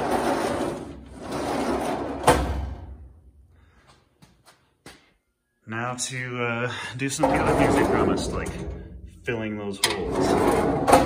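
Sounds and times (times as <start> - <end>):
metal drawer sliding: 0.0 - 3.0, 7.2 - 8.8, 9.8 - 11.0.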